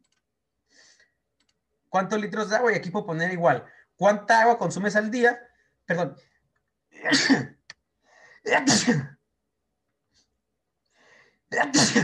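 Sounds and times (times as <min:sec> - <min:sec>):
person sneezing: 0:08.5 - 0:09.2, 0:11.6 - 0:12.0.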